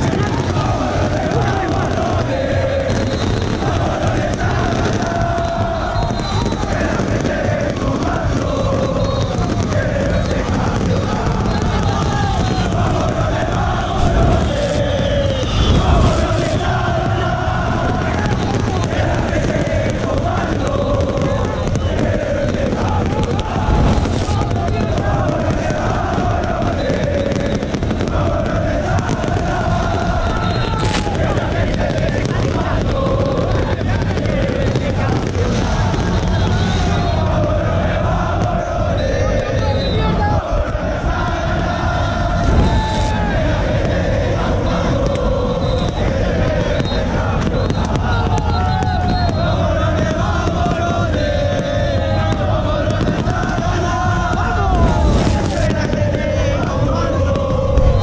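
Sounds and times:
firework bangs: 0:00.0 - 0:40.0, 0:41.0 - 0:58.0
crowd singing a chant: 0:00.0 - 0:58.0.

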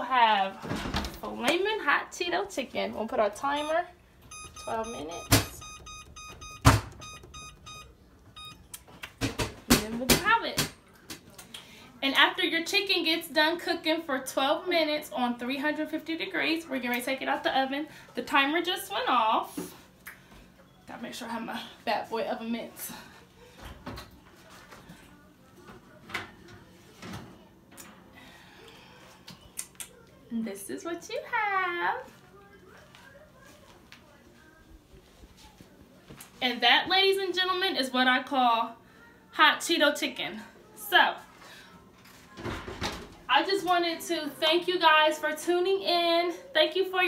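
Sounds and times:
short electronic beeps: 0:03.6 - 0:08.6.

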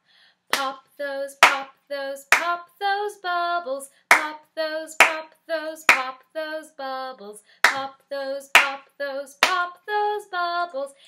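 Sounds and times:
hand claps: 0:00.5 - 0:00.7, 0:01.4 - 0:01.7, 0:04.1 - 0:04.3, 0:05.0 - 0:05.2, 0:05.9 - 0:06.1, 0:07.6 - 0:07.9, 0:08.6 - 0:08.8, 0:09.4 - 0:09.6
woman singing: 0:00.5 - 0:11.0.

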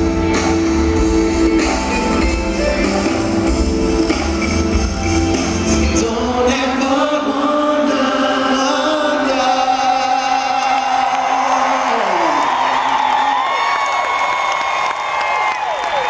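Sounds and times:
crowd cheering and whooping: 0:10.3 - 0:16.0.

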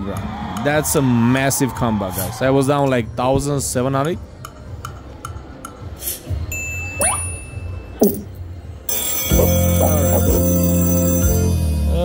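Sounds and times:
slot machine pitch sweeps: 0:06.8 - 0:08.3, 0:08.9 - 0:12.0
bright musical jingle: 0:08.9 - 0:12.0.

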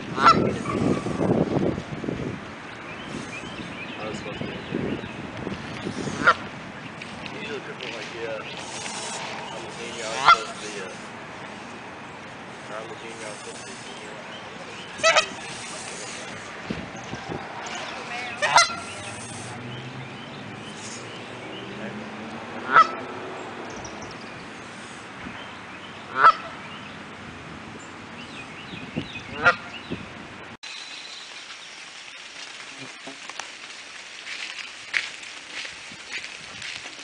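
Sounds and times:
goose honking: 0:00.1 - 0:01.2, 0:05.9 - 0:06.5, 0:08.6 - 0:11.1, 0:14.8 - 0:16.5, 0:17.8 - 0:19.6, 0:22.6 - 0:23.1, 0:26.1 - 0:26.6, 0:29.3 - 0:29.7.

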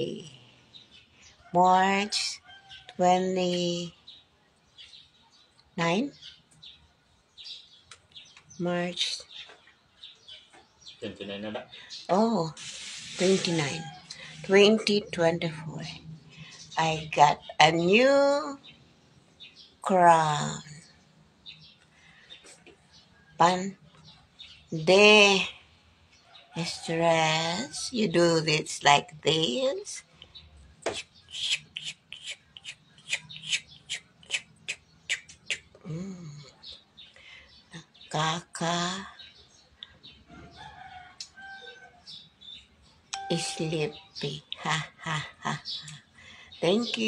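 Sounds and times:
birds chirping: 0:00.0 - 0:47.0
scalp massager rustling hair: 0:12.6 - 0:13.6.

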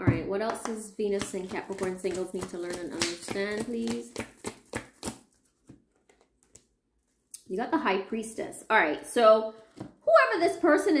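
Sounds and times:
cards tapping: 0:00.5 - 0:06.7
cards snapping: 0:02.0 - 0:05.4.

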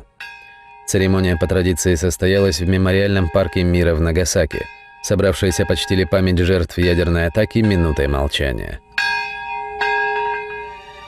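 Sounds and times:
bell tolling: 0:00.0 - 0:11.0.

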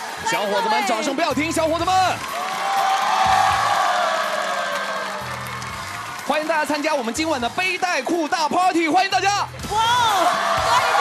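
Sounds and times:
background music: 0:00.0 - 0:11.0
studio audience clapping and cheering: 0:00.0 - 0:11.0.

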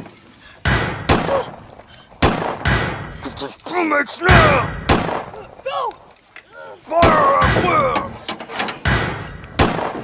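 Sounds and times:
hard knocks with ringing tail: 0:00.6 - 0:01.4, 0:02.2 - 0:03.2, 0:08.9 - 0:10.0.

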